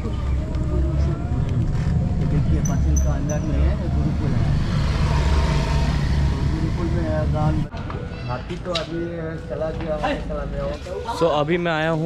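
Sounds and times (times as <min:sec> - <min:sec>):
vehicle rumbling: 0:00.0 - 0:12.0.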